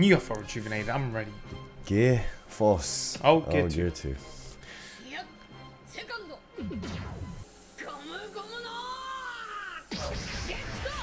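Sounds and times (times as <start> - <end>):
music: 0.0 - 11.0
sound effects: 9.9 - 11.0.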